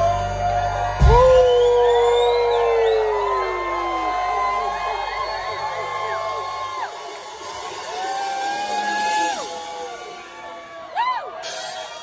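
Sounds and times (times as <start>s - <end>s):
crowd whooping and cheering: 0.0s - 12.0s
rock band hit and held note: 0.0s - 12.0s.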